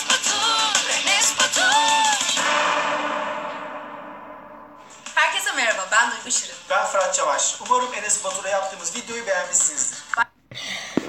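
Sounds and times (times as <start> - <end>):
pop song sung note: 0.0 - 4.0.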